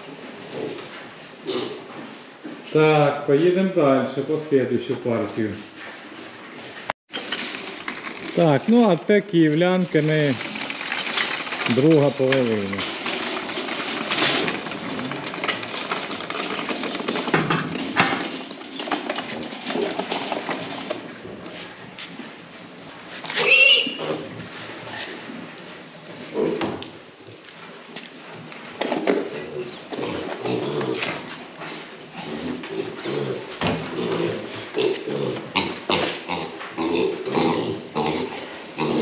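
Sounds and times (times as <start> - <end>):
wire cage trolley rattling: 7.1 - 21.7
piglet squealing: 23.4 - 24.2
piglets grunting: 32.1 - 39.0.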